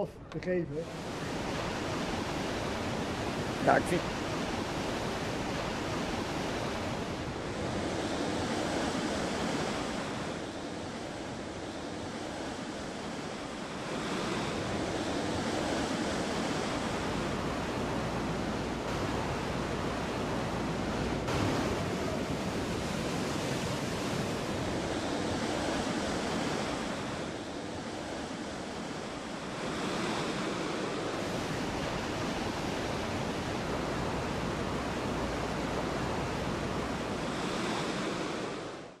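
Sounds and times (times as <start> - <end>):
churning white water rushing: 0.7 - 39.0.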